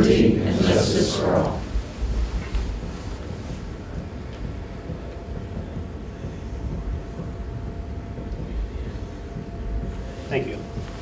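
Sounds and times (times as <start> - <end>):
faint steady hum: 0.0 - 11.0
low room rumble: 0.0 - 11.0.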